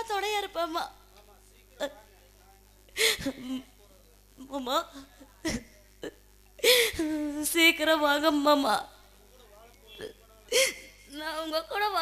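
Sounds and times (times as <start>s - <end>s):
woman sobbing: 10.5s - 11.2s.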